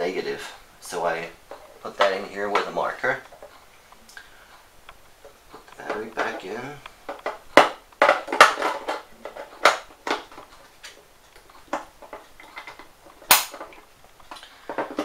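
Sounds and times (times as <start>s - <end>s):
plastic clicks and knocks: 7.1s - 15.0s.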